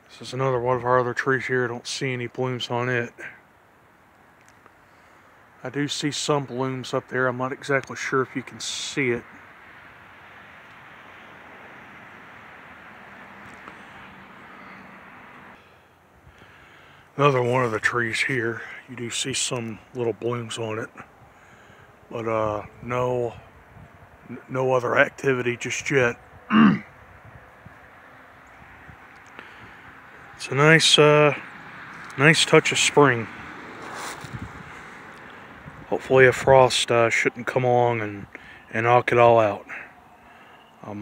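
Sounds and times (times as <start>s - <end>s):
distant engine humming: 3.2s - 41.0s.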